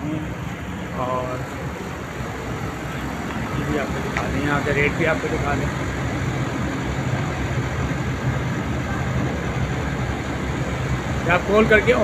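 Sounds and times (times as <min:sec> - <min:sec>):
traffic rumble: 0:00.0 - 0:12.0
man speaking: 0:01.0 - 0:01.6.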